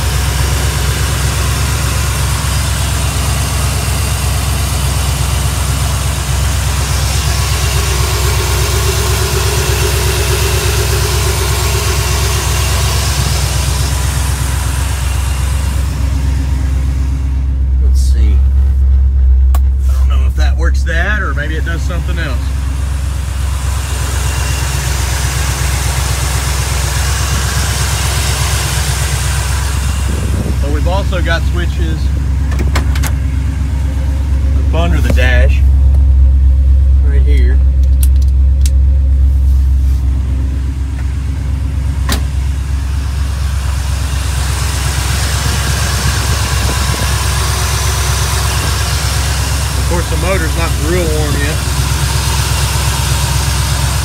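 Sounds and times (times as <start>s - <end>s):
engine idling: 0.0s - 54.0s.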